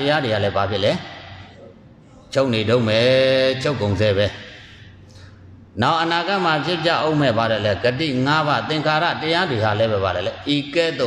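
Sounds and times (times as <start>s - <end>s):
monk chanting: 0.0s - 4.6s.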